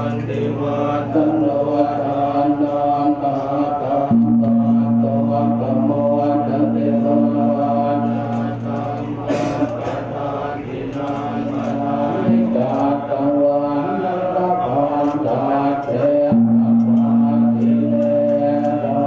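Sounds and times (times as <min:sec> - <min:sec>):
monks chanting in low drone: 0:00.0 - 0:19.0.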